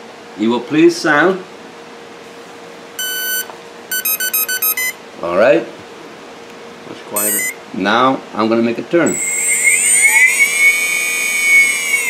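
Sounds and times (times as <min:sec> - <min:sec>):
speed controller beeps: 0:03.0 - 0:05.0, 0:07.2 - 0:07.6, 0:09.1 - 0:12.0.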